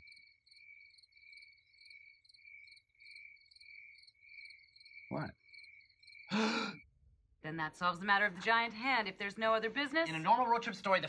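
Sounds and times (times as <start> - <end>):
insect chirping trill: 0.0 - 6.3.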